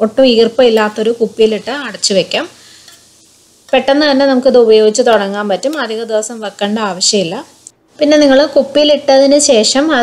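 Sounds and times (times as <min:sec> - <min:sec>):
woman speaking: 0:00.0 - 0:02.6, 0:03.7 - 0:10.0.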